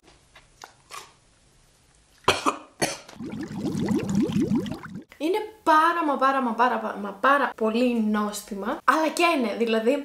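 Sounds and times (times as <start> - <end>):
woman clearing her throat: 2.3 - 3.1
woman coughing: 2.3 - 3.1.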